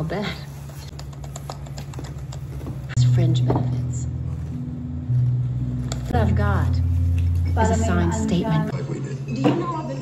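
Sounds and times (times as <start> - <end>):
plastic gloves handling food: 4.1 - 7.8.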